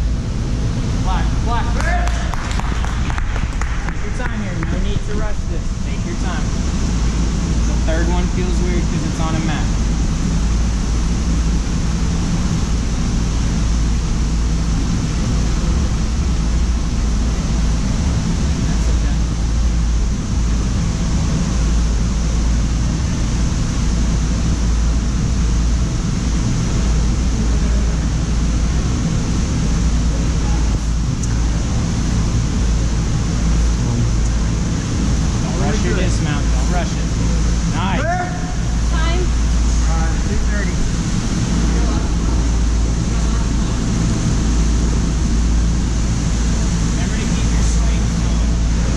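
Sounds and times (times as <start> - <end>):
low rumble and hum: 0.0 - 48.9.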